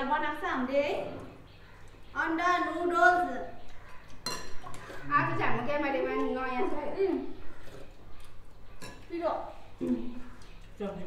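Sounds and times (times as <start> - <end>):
spoon clinking ceramic bowl: 4.2 - 5.0.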